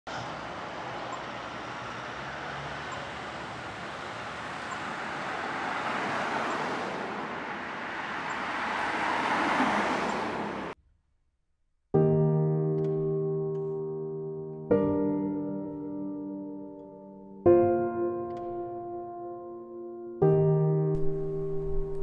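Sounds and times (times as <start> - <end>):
cars passing on road: 0.1 - 10.8, 21.0 - 22.0.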